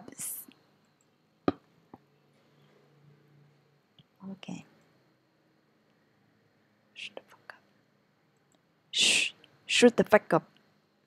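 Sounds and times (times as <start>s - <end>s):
whispered hiss: 2.0s - 11.0s.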